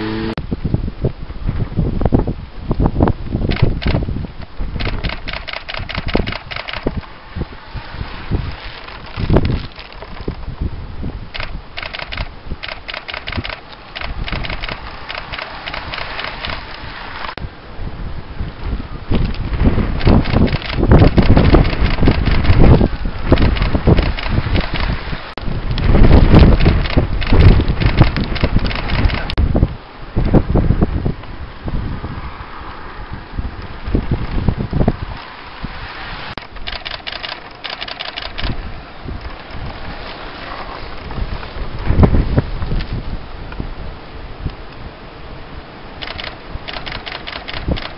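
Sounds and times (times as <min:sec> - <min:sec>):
wind buffeting microphone: 0:00.0 - 0:47.9
rapid crackly clicking: 0:03.5 - 0:07.0, 0:08.6 - 0:10.4, 0:11.3 - 0:17.4, 0:20.0 - 0:25.0, 0:25.8 - 0:29.4, 0:36.4 - 0:38.6, 0:46.0 - 0:47.9.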